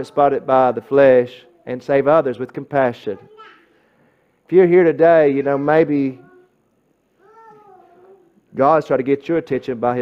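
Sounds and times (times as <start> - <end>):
man speaking: 0.0 - 3.3, 4.5 - 6.3, 8.5 - 10.0.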